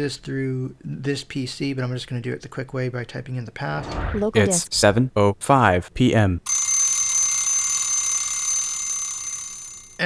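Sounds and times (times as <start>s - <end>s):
steady high alarm tones: 6.5s - 10.0s.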